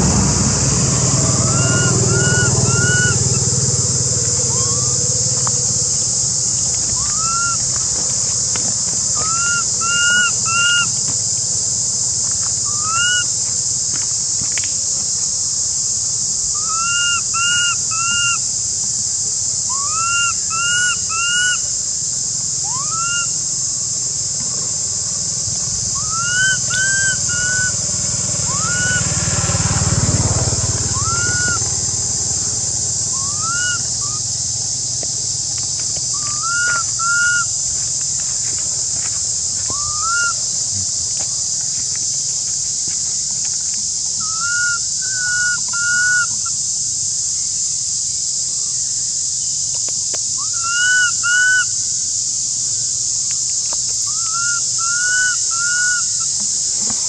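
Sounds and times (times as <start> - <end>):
low rumble: 0.0 - 7.0
insects droning: 0.0 - 57.0
baby monkey whistle-like coos: 7.0 - 7.6, 26.0 - 27.8, 30.9 - 31.6, 33.2 - 34.2, 36.2 - 37.5.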